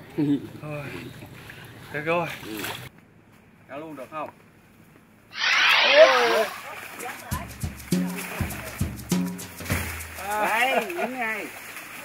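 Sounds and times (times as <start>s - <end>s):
muddy water splashing: 0.7s - 2.9s, 6.4s - 12.0s
background music: 7.2s - 10.2s.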